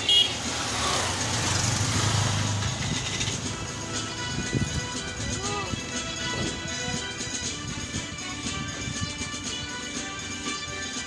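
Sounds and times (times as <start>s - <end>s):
vehicle engine passing close: 0.3s - 4.6s.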